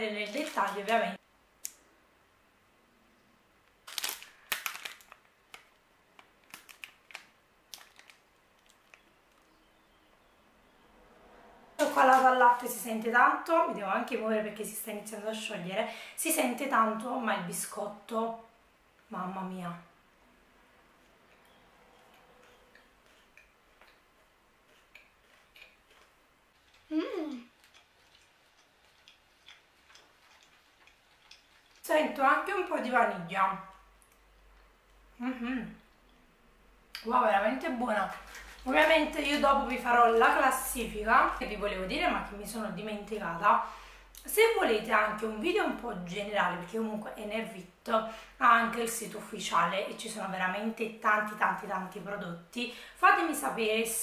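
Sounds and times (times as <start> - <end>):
plastic wrapper crinkling: 0.0 - 1.2, 3.7 - 9.5, 38.0 - 39.8
chewing with mouth closed: 21.0 - 31.9.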